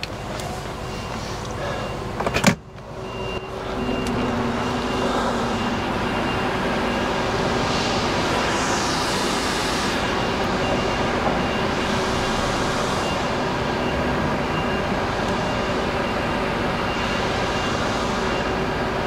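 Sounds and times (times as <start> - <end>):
diesel truck engine running: 0.0 - 19.0.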